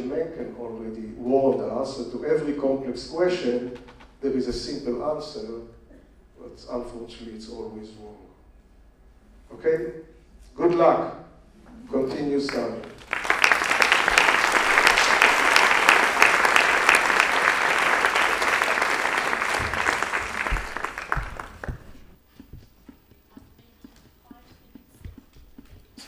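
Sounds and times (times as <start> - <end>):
audience applauding: 12.5 - 22.2.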